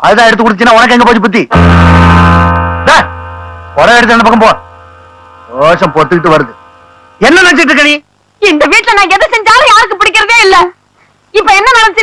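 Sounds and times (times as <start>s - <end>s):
sustained low orchestral chord: 1.6s - 7.3s.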